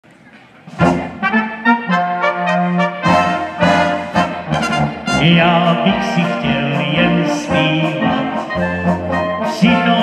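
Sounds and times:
brass band playing: 0:00.7 - 0:10.0.

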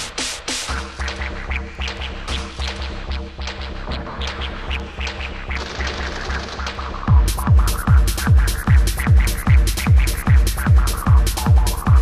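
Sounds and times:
techno kick and bass beat: 0:00.0 - 0:12.0.

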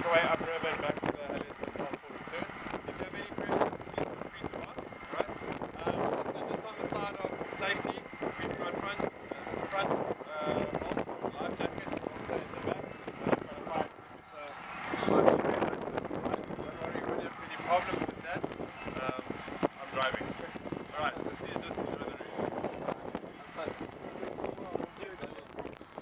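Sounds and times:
man talking: 0:00.0 - 0:25.8
wind on microphone: 0:00.0 - 0:26.0.

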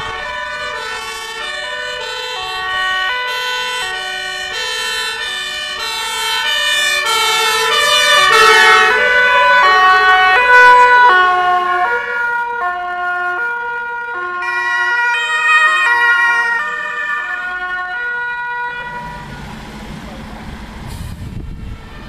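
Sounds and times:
two-tone emergency sirens: 0:00.0 - 0:22.0
faint engine noise: 0:18.8 - 0:22.0.

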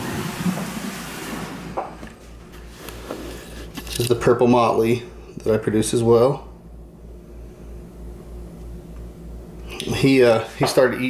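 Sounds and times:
plastic tub scraping as it slides: 0:00.0 - 0:01.8.

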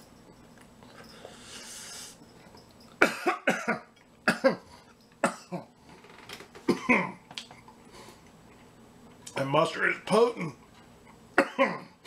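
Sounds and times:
man coughing: 0:03.0 - 0:05.7, 0:06.7 - 0:07.2, 0:11.4 - 0:12.0.

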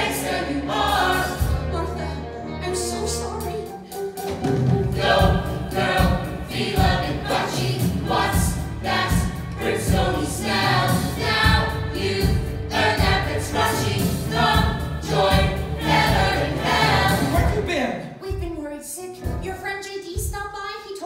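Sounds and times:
chorus singing: 0:00.0 - 0:17.9
band with steady beat: 0:03.5 - 0:17.8, 0:19.2 - 0:19.7.

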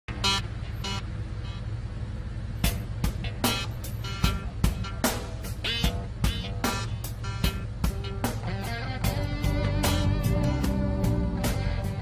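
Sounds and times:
short pitched tones: 0:00.1 - 0:01.6
car engine rumble: 0:00.1 - 0:12.0
soundtrack music with percussive beat: 0:02.6 - 0:12.0.

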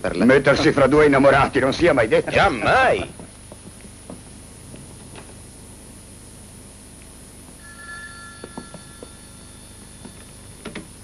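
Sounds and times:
desk telephone ringing: 0:07.6 - 0:11.0.

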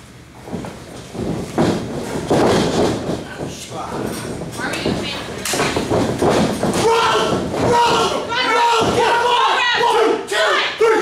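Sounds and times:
people shouting: 0:06.7 - 0:11.0.

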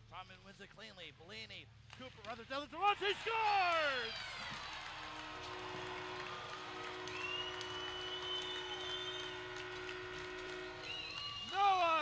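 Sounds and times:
scattered applause: 0:01.9 - 0:12.0.

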